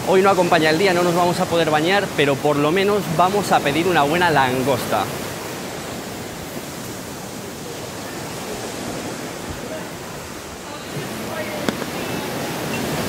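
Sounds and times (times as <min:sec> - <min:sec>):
sea waves breaking on beach: 0:00.0 - 0:13.0.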